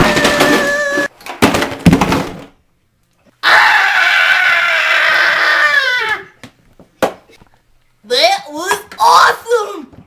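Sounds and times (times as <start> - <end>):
child screaming: 0.0 - 1.1, 3.4 - 6.4, 9.0 - 9.9.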